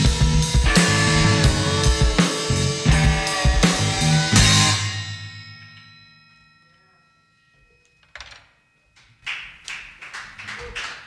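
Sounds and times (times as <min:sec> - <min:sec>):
rock band final chord: 0:00.0 - 0:05.2
people clapping: 0:09.0 - 0:11.0.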